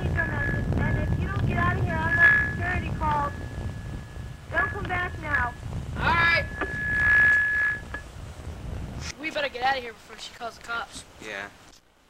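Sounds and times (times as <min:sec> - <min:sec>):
high electronic keypad beep: 0:00.2 - 0:05.6.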